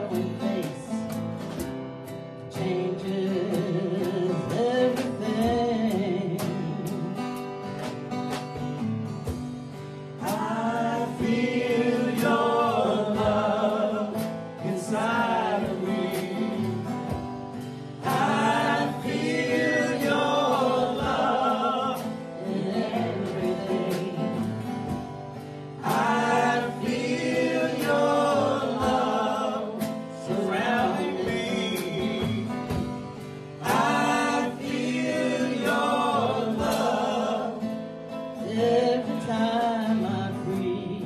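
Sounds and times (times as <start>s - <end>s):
group singing gospel song: 0.0s - 1.6s, 2.4s - 7.2s, 10.2s - 41.0s
instrumental backing: 0.0s - 41.0s
strummed acoustic guitar: 0.0s - 41.0s
person singing: 2.5s - 7.2s, 18.0s - 24.6s.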